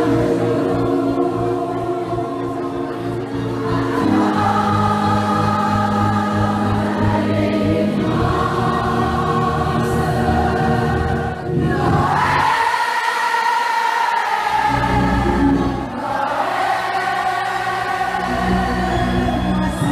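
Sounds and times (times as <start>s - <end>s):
choir singing long notes: 0.0s - 19.9s.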